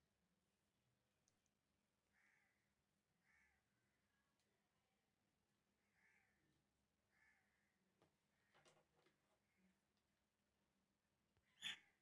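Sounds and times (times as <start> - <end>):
faint bird-like calls: 2.1 - 4.4, 5.8 - 8.6, 11.4 - 12.0.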